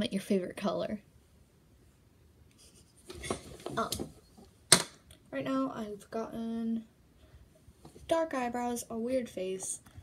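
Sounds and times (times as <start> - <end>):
scraping and rustling handling noises: 2.9 - 4.6.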